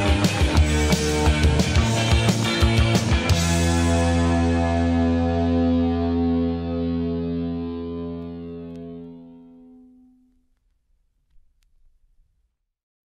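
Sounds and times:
distorted electric guitar chord: 0.0s - 10.4s.

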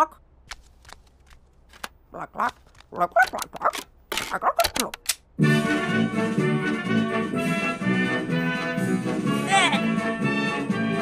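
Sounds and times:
cartoon character babbling: 2.1s - 5.0s, 9.4s - 9.9s.

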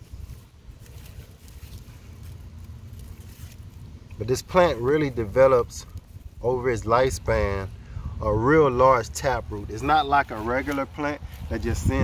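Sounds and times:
soil and roots crackling: 0.0s - 12.0s
steady low rumble: 0.0s - 12.0s.

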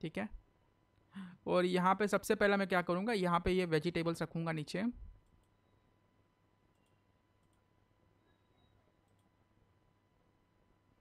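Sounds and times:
low room hum: 0.0s - 11.0s
computer mouse clicks: 5.2s - 5.6s, 6.7s - 7.7s, 8.6s - 9.3s.

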